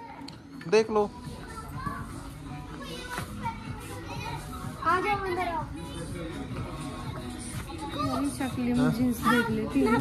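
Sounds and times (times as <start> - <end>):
background music: 0.0 - 10.0
children's voices and chatter: 0.0 - 10.0.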